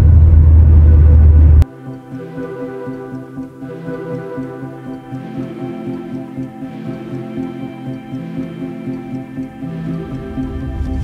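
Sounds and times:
car cabin low rumble: 0:00.0 - 0:01.6
quiet background music: 0:01.6 - 0:11.0.

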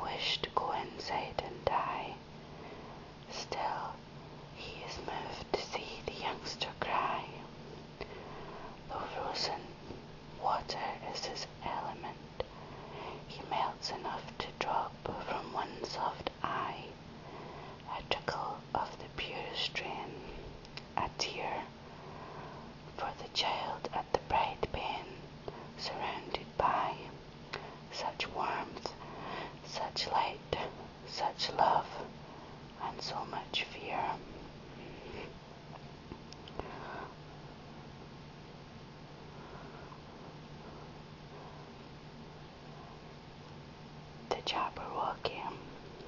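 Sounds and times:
person whispering: 0:00.0 - 0:02.2, 0:03.3 - 0:04.0, 0:04.6 - 0:07.5, 0:08.9 - 0:09.8, 0:10.4 - 0:12.5, 0:13.2 - 0:17.0, 0:17.9 - 0:20.4, 0:21.0 - 0:21.7, 0:23.0 - 0:25.2, 0:25.8 - 0:27.2, 0:27.9 - 0:29.0, 0:29.6 - 0:32.1, 0:32.8 - 0:34.3, 0:44.3 - 0:45.7
faint low hum: 0:00.0 - 0:46.0.

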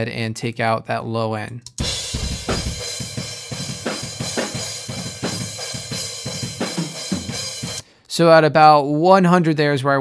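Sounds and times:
kick and snare drum hits: 0:01.8 - 0:05.6.

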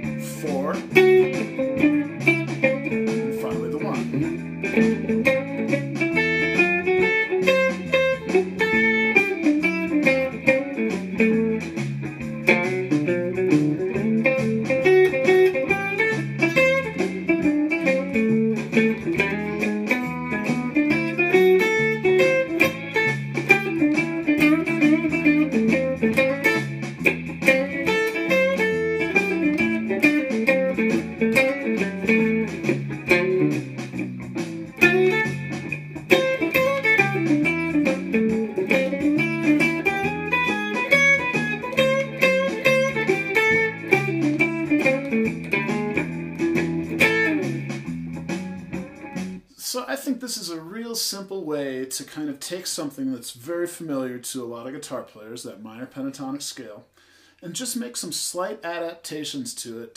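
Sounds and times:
electric guitar blues lead: 0:00.0 - 0:49.5
blues backing track: 0:00.0 - 0:59.9.

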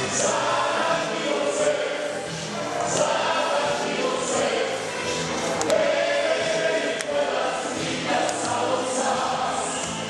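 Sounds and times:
group singing in chorus: 0:00.0 - 0:10.0
musical accompaniment: 0:00.0 - 0:10.0.

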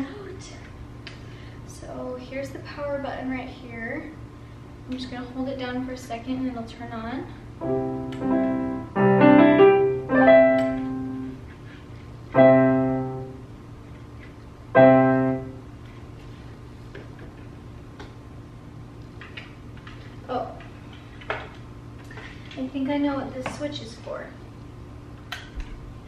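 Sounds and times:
digital piano chords: 0:07.6 - 0:11.4, 0:12.3 - 0:13.4, 0:14.7 - 0:15.7.

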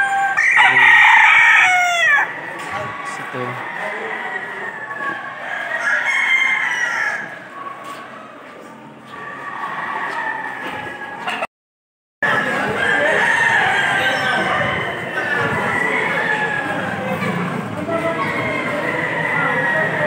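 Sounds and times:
roosters crowing: 0:00.0 - 0:08.4, 0:09.0 - 0:11.5, 0:12.2 - 0:20.0.

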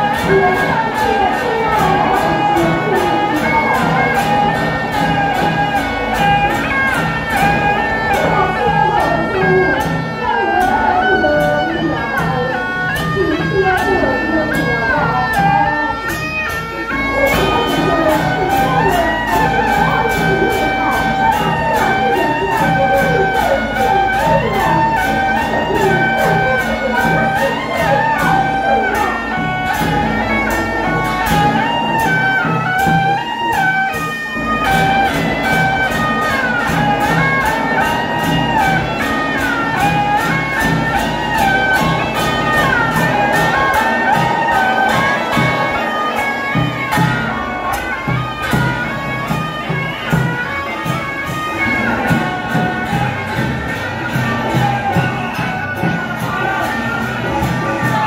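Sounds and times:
hand cymbals: 0:00.0 - 0:58.0
reedy suona melody: 0:00.0 - 0:58.0
big drum strokes: 0:16.8 - 0:58.0.

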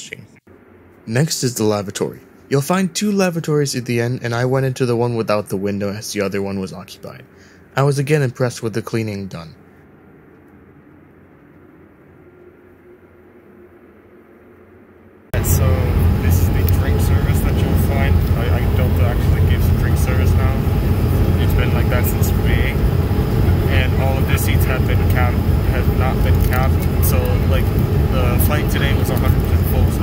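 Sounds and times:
airliner engine drone: 0:00.0 - 0:30.0
passengers talking: 0:15.4 - 0:30.0.

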